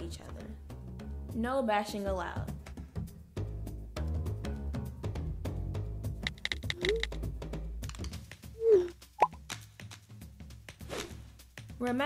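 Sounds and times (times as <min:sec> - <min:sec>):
soft background music: 0:00.0 - 0:12.0
phone keypad taps: 0:06.3 - 0:07.1.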